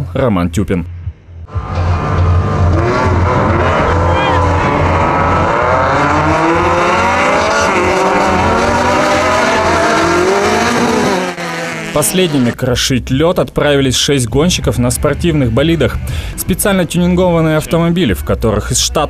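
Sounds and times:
race car engines revving: 1.4s - 12.6s, 13.7s - 18.8s.

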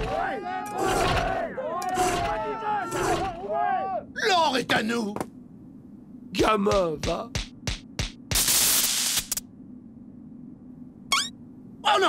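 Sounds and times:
loud burst of hiss: 8.3s - 9.4s
high squeaky glide: 11.1s - 11.4s.

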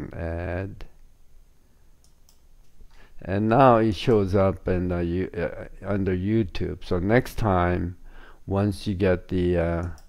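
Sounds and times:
computer mouse clicks: 2.0s - 3.0s, 9.8s - 10.0s.

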